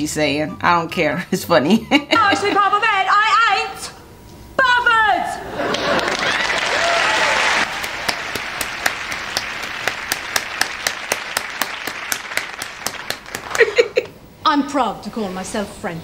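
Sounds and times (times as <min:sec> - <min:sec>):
noisy laughter: 0:05.4 - 0:07.8, 0:13.4 - 0:14.2
applause: 0:05.7 - 0:13.8
person clapping steadily: 0:07.6 - 0:14.1.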